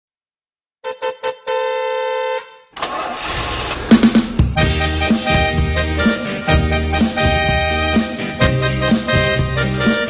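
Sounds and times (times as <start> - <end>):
motorbike engine starting and running: 2.8 - 4.8.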